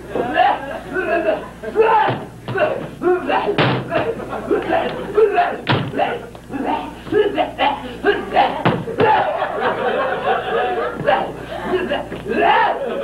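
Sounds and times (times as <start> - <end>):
mumbling voices: 0.0 - 13.0
loud thumps: 2.0 - 4.2, 5.6 - 6.1, 8.6 - 9.2
laughter: 9.1 - 11.8.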